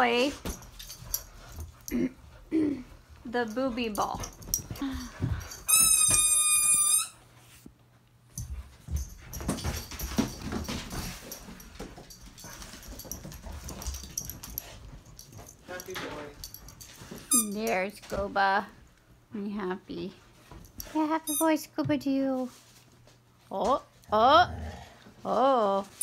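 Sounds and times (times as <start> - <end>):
knocks and shuffling of dogs: 0.0 - 6.3, 7.4 - 19.0, 20.1 - 24.0.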